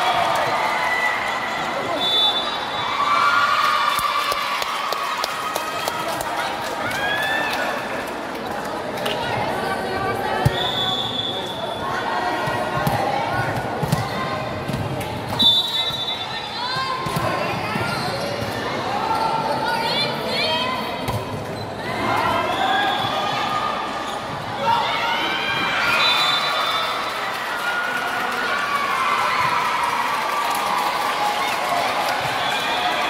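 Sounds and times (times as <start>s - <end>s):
people shouting in a hall: 0.0s - 8.2s, 21.8s - 33.0s.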